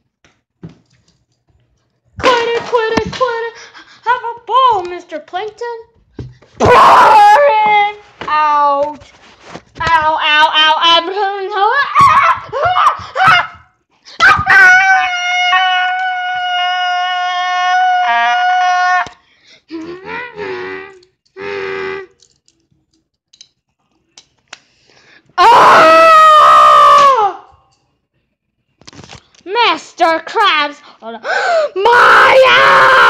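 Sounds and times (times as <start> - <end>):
child screaming: 31.8 - 33.0.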